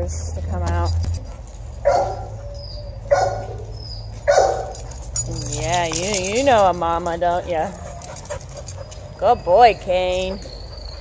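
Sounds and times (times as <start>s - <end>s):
dog barking: 1.8s - 2.4s, 3.1s - 3.6s, 4.2s - 4.8s.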